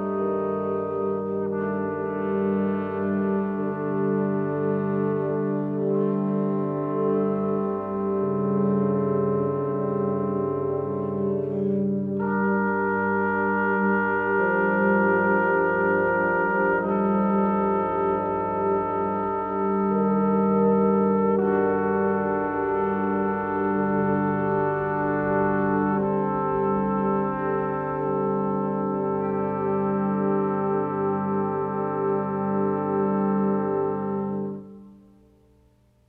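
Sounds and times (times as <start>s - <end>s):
trombone choir playing chords: 0.0s - 35.0s.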